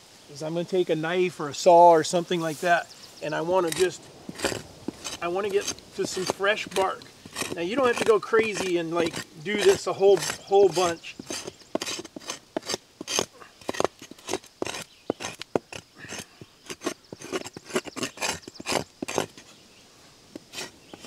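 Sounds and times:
knife scraping bark: 2.4 - 19.6, 20.2 - 21.0.

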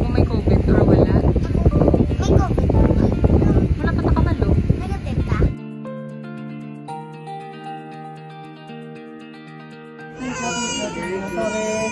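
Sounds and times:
soft background music: 0.0 - 11.9
infant crying loudly: 10.1 - 11.9.

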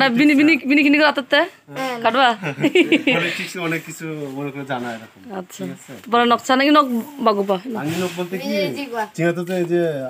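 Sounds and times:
man talking: 2.8 - 5.2, 7.8 - 10.0.

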